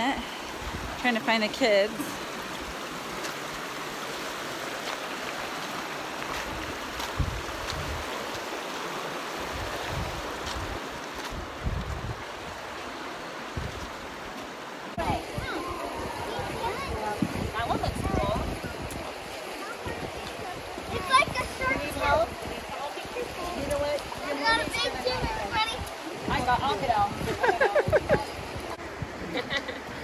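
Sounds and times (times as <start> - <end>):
river rushing over rocks: 0.0 - 30.0.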